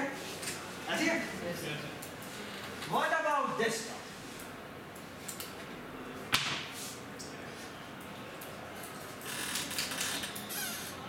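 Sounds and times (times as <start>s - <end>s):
sharp knock: 6.3s - 6.7s.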